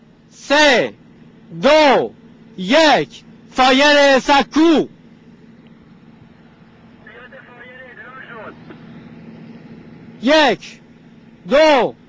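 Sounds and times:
steady low hum: 0.0 - 12.0
faint distant voices: 6.9 - 9.2.

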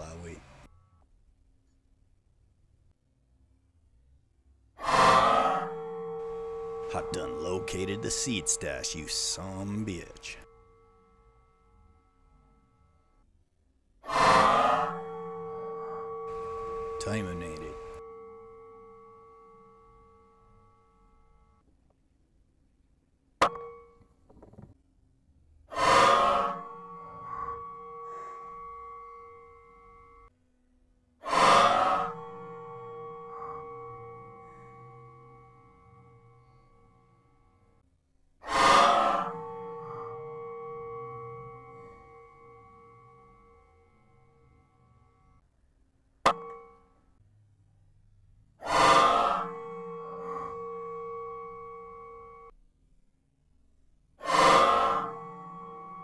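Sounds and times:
metallic ringing: 4.8 - 13.3, 14.1 - 21.6.

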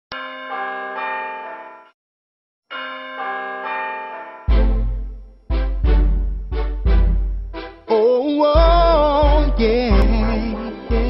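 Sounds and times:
bell-like chime notes: 0.1 - 2.0, 2.7 - 5.4.

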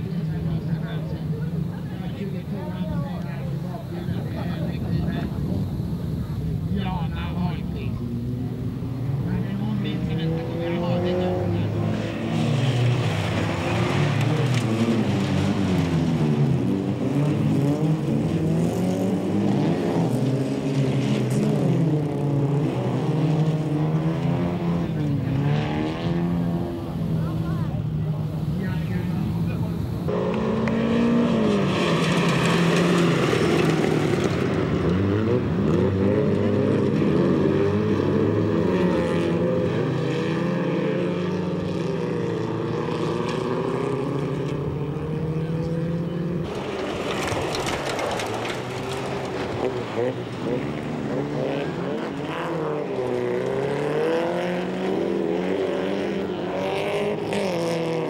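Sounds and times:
race car engines revving: 0.0 - 58.0.

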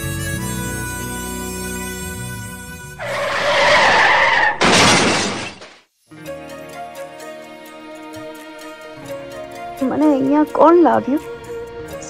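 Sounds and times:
tyre screech: 3.0 - 5.6
car crash: 3.0 - 5.8
background music: 6.1 - 12.0.

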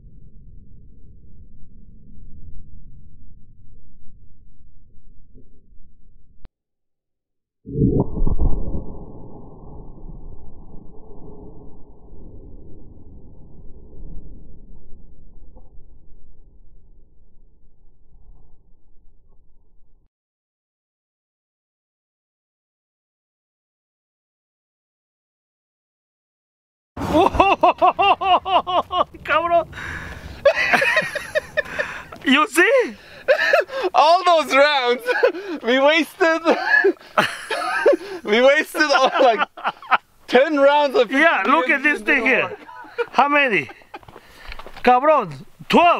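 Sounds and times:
grenade explosion boom: 7.7 - 17.1
man laughing: 27.0 - 29.2, 30.4 - 40.0, 41.6 - 44.2.

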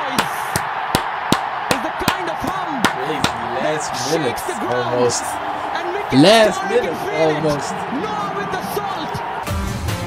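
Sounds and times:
stadium crowd: 0.0 - 10.0
person clapping hands: 0.2 - 3.4.

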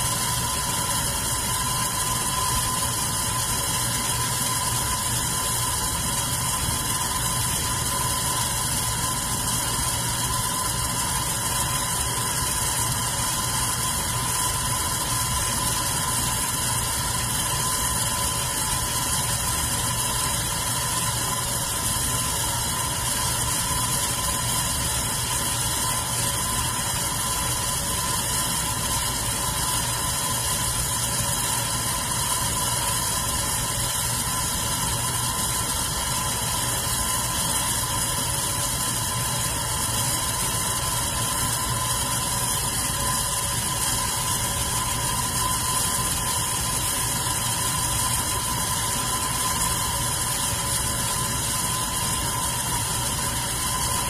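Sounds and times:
electric fan running: 0.0 - 54.0.

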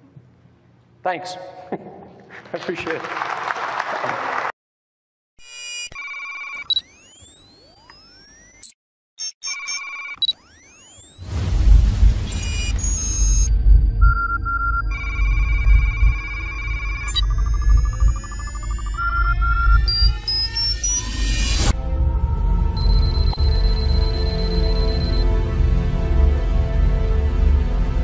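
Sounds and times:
electronic beeping tones: 5.4 - 11.4, 12.2 - 21.7, 22.8 - 25.3
heavy low rumble: 11.3 - 18.2.

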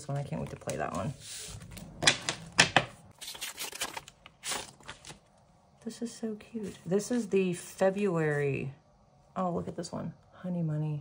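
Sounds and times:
paper cards sliding rustle: 0.3 - 1.9, 3.1 - 5.2.

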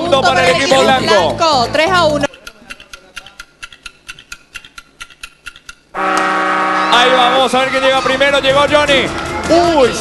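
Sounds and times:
music: 0.0 - 2.3, 6.9 - 10.0
fast electronic ticking: 1.4 - 6.0.

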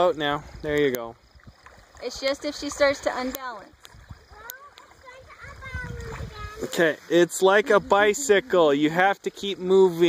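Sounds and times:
splashing in shallow water: 0.0 - 10.0
faint children's voices: 4.2 - 8.8.

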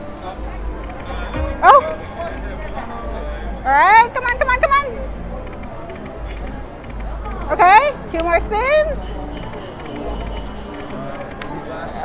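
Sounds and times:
casino chatter: 0.0 - 12.0.

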